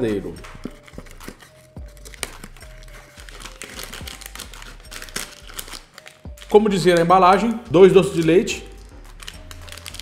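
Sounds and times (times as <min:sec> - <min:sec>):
plastic packaging crinkling: 0:00.4 - 0:10.0.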